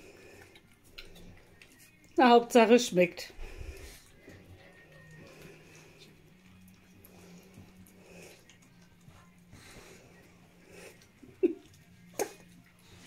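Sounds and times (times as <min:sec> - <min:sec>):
puppies lapping and smacking: 0:00.0 - 0:13.0.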